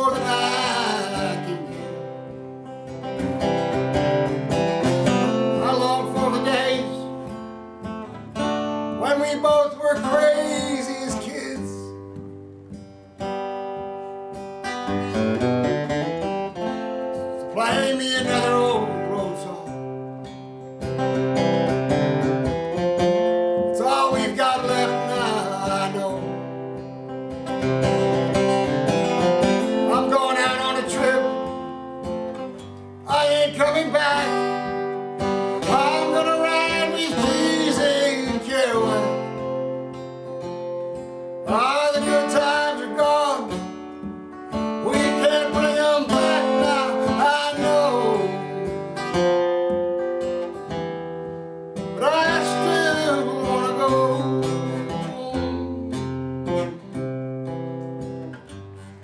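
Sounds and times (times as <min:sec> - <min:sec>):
man singing: 0:00.0 - 0:02.4, 0:05.2 - 0:07.4, 0:08.9 - 0:12.0, 0:17.2 - 0:20.0, 0:23.6 - 0:26.8, 0:29.6 - 0:32.4, 0:33.0 - 0:39.8, 0:41.4 - 0:43.8, 0:44.7 - 0:49.1, 0:51.9 - 0:56.1
acoustic guitar: 0:00.0 - 0:59.0.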